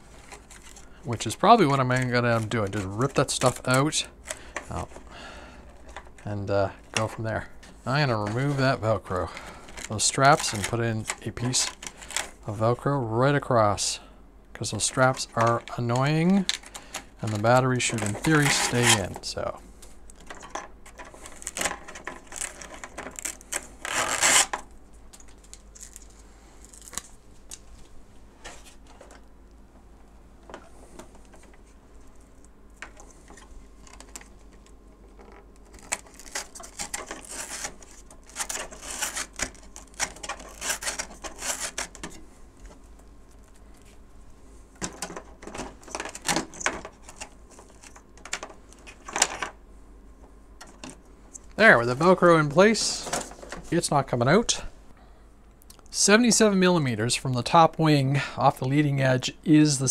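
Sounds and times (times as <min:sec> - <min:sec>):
velcro ripping and rustling: 0:21.3 - 0:24.6, 0:25.3 - 0:27.5, 0:35.7 - 0:41.9.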